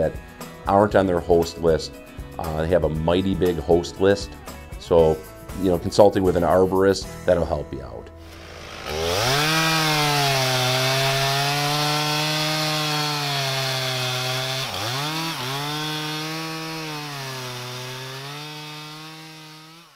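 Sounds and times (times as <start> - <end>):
chainsaw engine revving: 8.2 - 19.9.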